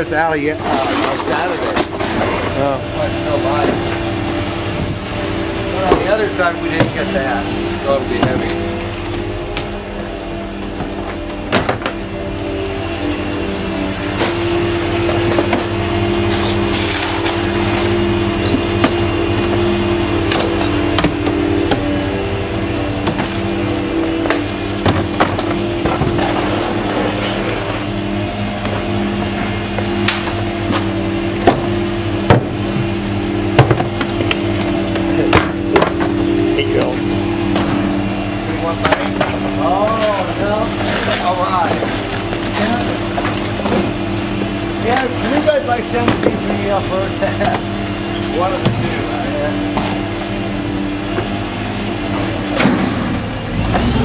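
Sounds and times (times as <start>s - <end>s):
garbage truck engine drone: 0.0s - 54.0s
trash cans banging against metal: 0.4s - 50.4s, 51.1s - 54.0s.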